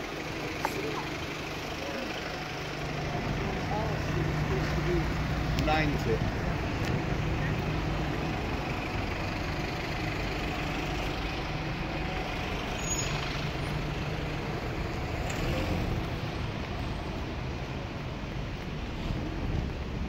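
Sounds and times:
large vehicle engine passing: 0:00.0 - 0:17.3
road traffic: 0:00.0 - 0:20.0.

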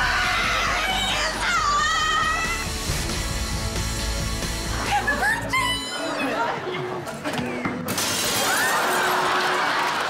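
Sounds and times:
music: 0:00.0 - 0:09.3
glass shattering: 0:07.9 - 0:09.2.

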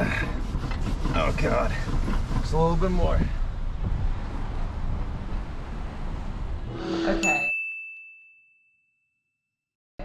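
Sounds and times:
outdoor noise: 0:00.0 - 0:07.6
car passing slowly: 0:02.6 - 0:06.8.

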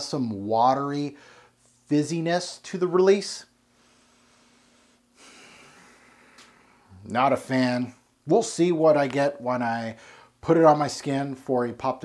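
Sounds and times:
person breathing through nose: 0:03.7 - 0:07.0.

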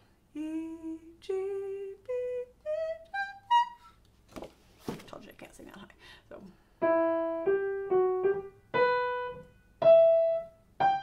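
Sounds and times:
woman singing rising notes: 0:00.3 - 0:04.0.

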